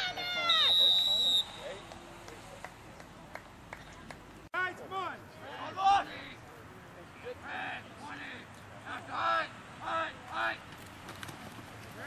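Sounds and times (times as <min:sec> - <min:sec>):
voices shouting: 0:00.0 - 0:01.9, 0:07.4 - 0:10.7
outdoor ambience: 0:00.0 - 0:12.0
referee's whistle: 0:00.3 - 0:01.8.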